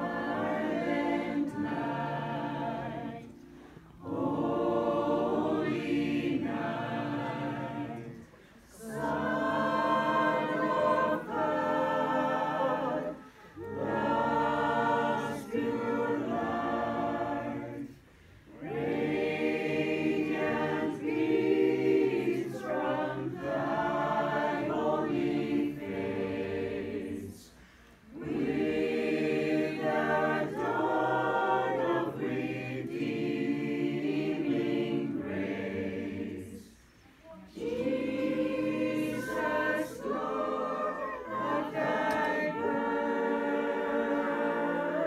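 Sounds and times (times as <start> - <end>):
mixed choir singing a carol: 0.0 - 45.0.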